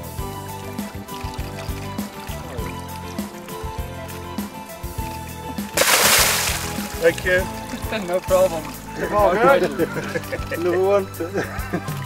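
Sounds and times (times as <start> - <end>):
background music: 0.0 - 12.0
loud water splash: 5.6 - 7.9.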